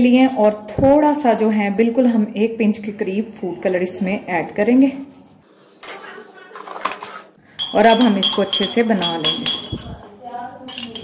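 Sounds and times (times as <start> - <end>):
spoon clinking in ceramic mug: 7.6 - 10.0, 10.7 - 11.0.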